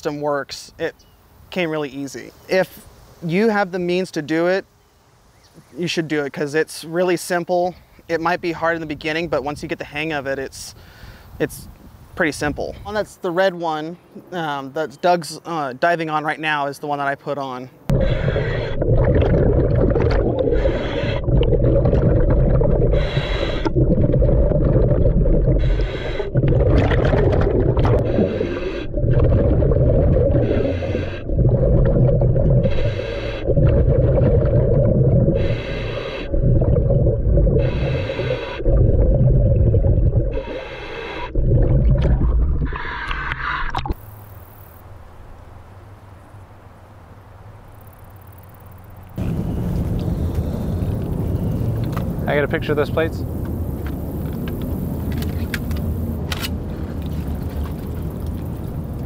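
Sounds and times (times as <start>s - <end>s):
faint outdoor ambience: 0.0s - 22.2s, 42.7s - 59.0s
exhaled bubbles rumbling: 17.9s - 44.3s, 55.9s - 59.0s
regulator inhalation hiss: 20.5s - 21.3s, 22.9s - 23.7s, 25.5s - 26.4s, 28.0s - 28.9s, 30.4s - 31.3s, 32.6s - 33.5s, 35.3s - 36.3s, 37.6s - 38.6s, 40.3s - 41.3s.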